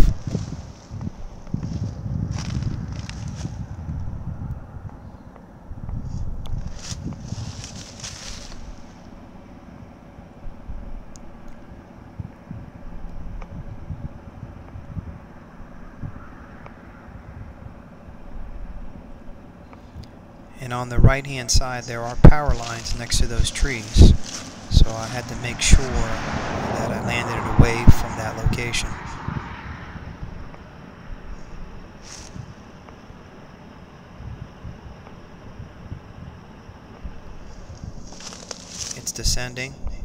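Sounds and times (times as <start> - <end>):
wind buffeting microphone: 0.0 - 19.2, 20.9 - 32.9, 34.0 - 40.0.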